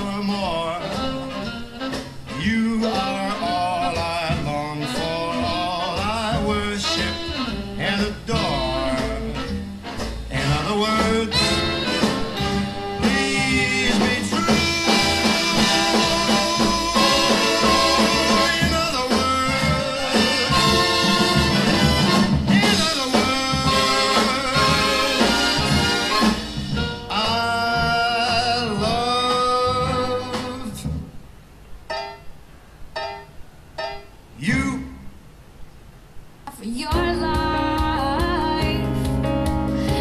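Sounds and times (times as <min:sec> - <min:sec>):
swing jazz song with singer and brass: 0:00.0 - 0:31.1, 0:34.4 - 0:35.0, 0:36.5 - 0:40.0.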